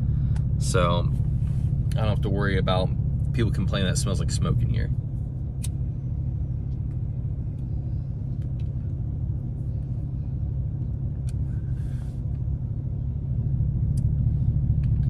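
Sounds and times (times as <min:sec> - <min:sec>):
road noise: 0:00.0 - 0:15.0
truck engine rumble: 0:00.0 - 0:15.0.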